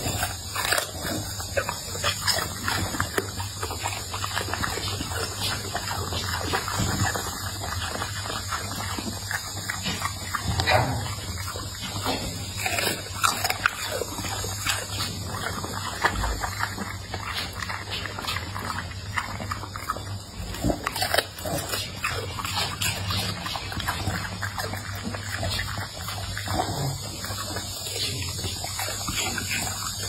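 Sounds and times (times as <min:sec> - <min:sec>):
dog chewing and lip smacking: 0:00.0 - 0:30.0.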